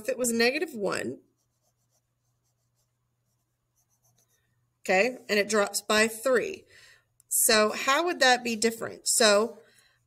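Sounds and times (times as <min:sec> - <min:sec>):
pen scratching on paper: 0:01.2 - 0:04.4.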